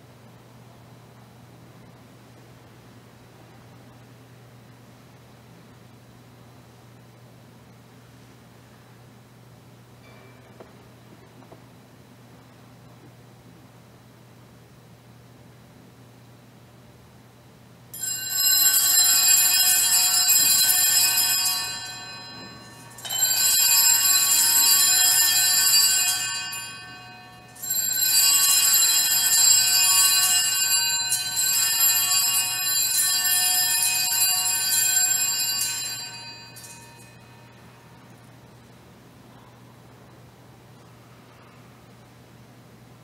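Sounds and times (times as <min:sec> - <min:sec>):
altar bells ringing: 0:18.0 - 0:37.8.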